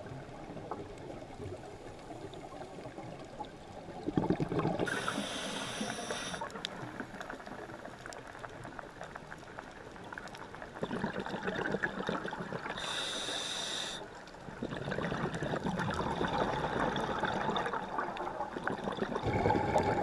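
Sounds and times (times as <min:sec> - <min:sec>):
exhaled bubbles gurgling underwater: 0:00.0 - 0:20.0
steady crackling background: 0:00.0 - 0:20.0
regulator breathing hiss: 0:04.9 - 0:06.5, 0:12.8 - 0:14.1.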